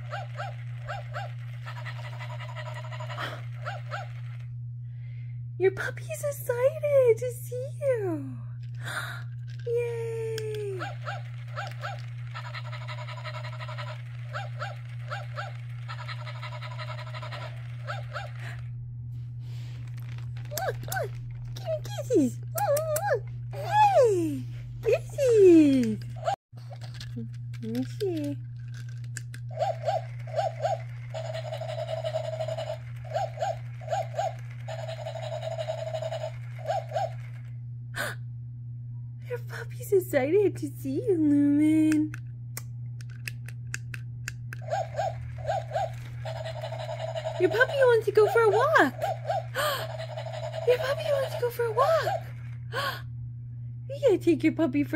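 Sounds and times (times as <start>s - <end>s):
electronic toy dog barking: 0.0s - 4.5s, 10.4s - 18.7s, 29.5s - 37.5s, 44.5s - 52.6s
steady low hum: 0.0s - 54.9s.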